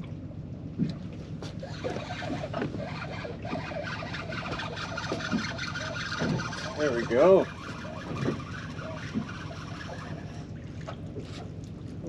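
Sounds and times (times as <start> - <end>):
water around a boat: 0.0 - 12.0
wind: 0.0 - 12.0.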